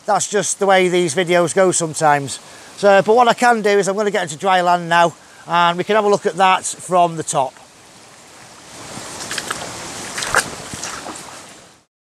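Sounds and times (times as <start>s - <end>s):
stream running: 0.0s - 11.9s
splashing steps in water: 8.8s - 11.6s.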